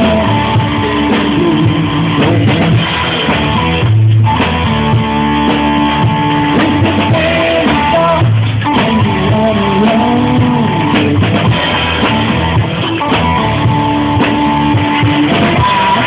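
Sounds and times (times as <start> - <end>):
live rock band through speakers: 0.0 - 16.0.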